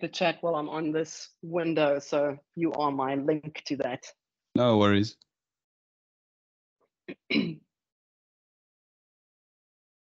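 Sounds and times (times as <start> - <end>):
person clearing throat: 4.6 - 5.1, 7.1 - 7.6.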